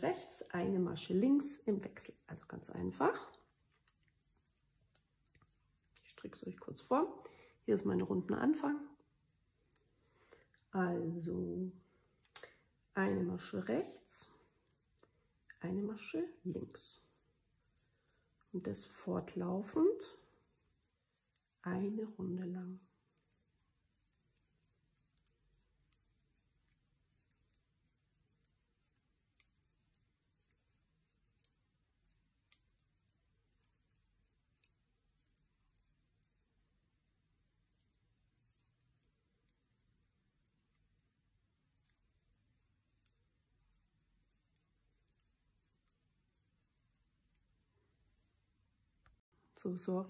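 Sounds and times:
knitting needles clicking: 0:03.4 - 0:06.1, 0:20.2 - 0:21.9, 0:22.6 - 0:47.6.

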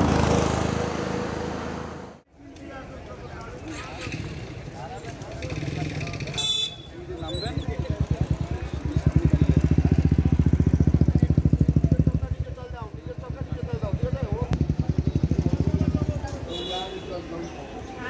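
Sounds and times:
motorcycle engine running: 0:07.3 - 0:16.5.

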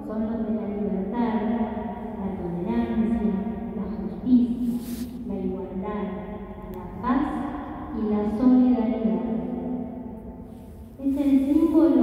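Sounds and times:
woman reading aloud: 0:00.0 - 0:09.5, 0:11.0 - 0:12.0.

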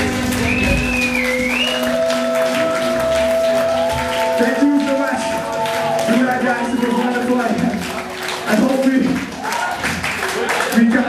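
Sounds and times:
drums: 0:00.0 - 0:02.0
crowd applause: 0:00.0 - 0:11.0.

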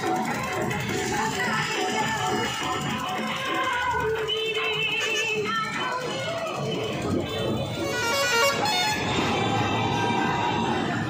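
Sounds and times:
busy street noise: 0:00.0 - 0:11.0
music: 0:00.0 - 0:11.0
vehicle horn long note: 0:07.9 - 0:09.0.

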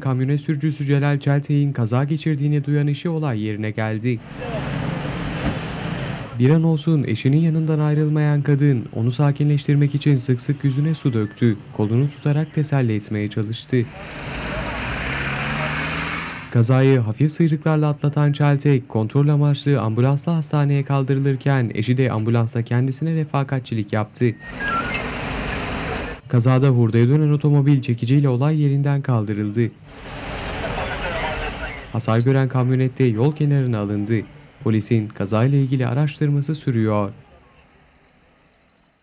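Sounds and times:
steady rushing street noise: 0:00.0 - 0:22.2, 0:23.0 - 0:39.0
vehicle passing: 0:04.2 - 0:06.4, 0:13.7 - 0:16.9, 0:29.8 - 0:36.0.

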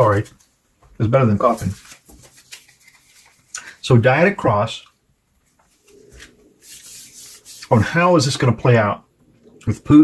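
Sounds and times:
cards rustling and clicking: 0:01.3 - 0:03.8.

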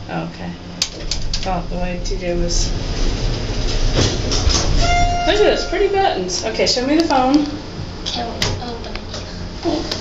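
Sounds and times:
elevator mechanical rumble: 0:00.0 - 0:10.0
steady tone: 0:01.6 - 0:08.0.

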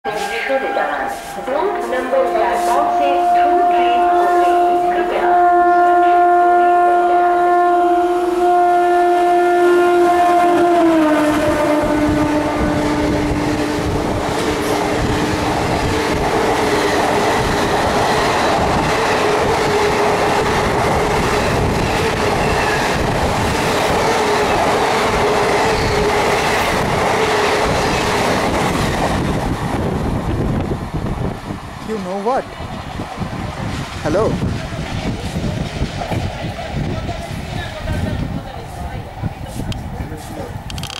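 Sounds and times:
train horn: 0:00.0 - 0:28.2
train coaches rumbling past: 0:00.0 - 0:40.9
train wheel clatter: 0:11.4 - 0:40.9.

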